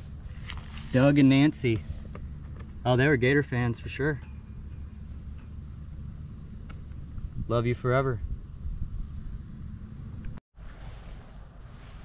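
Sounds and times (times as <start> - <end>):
crickets chirping: 0.0 - 12.0
low steady rumble: 0.0 - 12.0.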